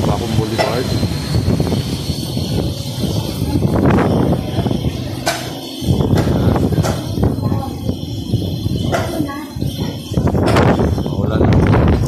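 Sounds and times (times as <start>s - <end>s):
gusty wind on microphone: 0.0s - 12.0s.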